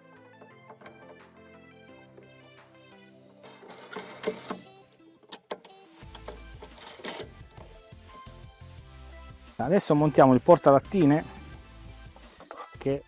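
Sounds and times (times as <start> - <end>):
background music with steady beat: 0.0 - 13.0.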